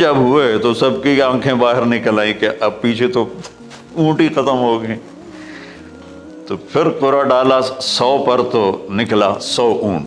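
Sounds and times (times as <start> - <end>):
man speaking: 0.0 - 5.2, 6.5 - 10.0
soft background music: 0.0 - 10.0.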